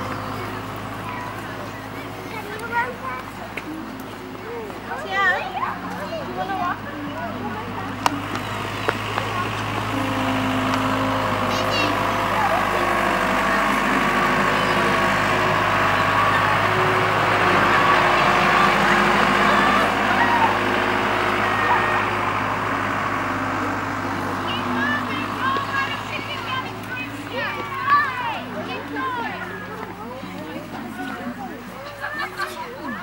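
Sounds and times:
children calling and chattering: 0.0 - 33.0.

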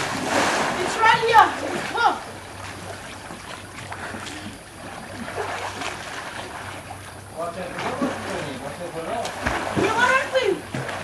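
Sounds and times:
swimmers splashing in pool: 0.0 - 11.0.

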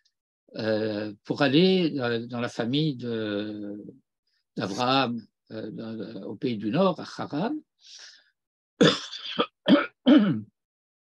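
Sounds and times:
man clearing throat and coughing: 8.8 - 10.6.

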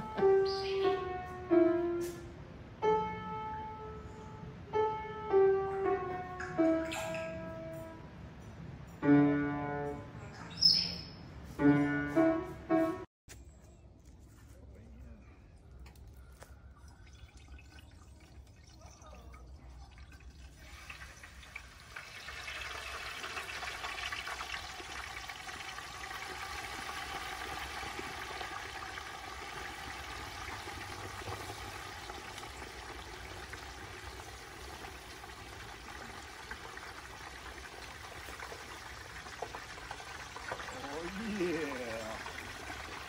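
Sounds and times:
hot oil bubbling and sizzling: 17.0 - 43.0.

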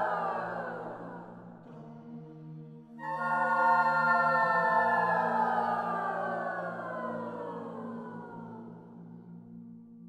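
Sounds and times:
choir singing: 0.0 - 1.9, 2.9 - 9.4.

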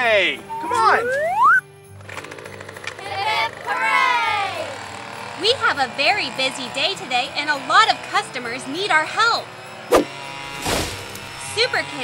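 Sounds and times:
background music: 0.0 - 12.0
cartoon rising whistle: 0.4 - 1.6.

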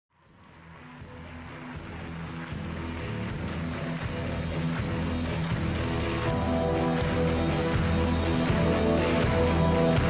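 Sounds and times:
sustained notes over bass line: 5.5 - 10.0.

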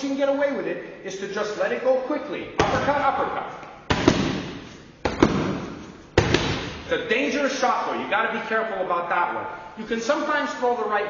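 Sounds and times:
gloves punching focus mitts: 3.9 - 6.9.

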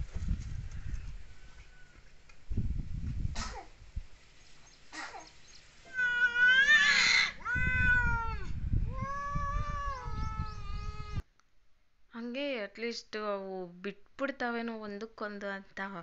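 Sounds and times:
cats yowling in a fight: 5.9 - 11.2.

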